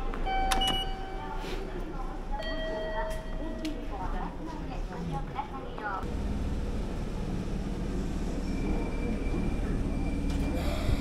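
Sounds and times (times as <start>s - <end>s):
ticket gate beeps: 0.2s - 1.2s.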